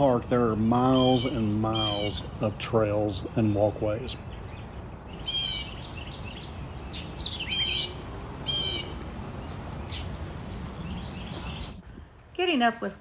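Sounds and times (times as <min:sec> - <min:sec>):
songbird chirping: 0:00.0 - 0:13.0.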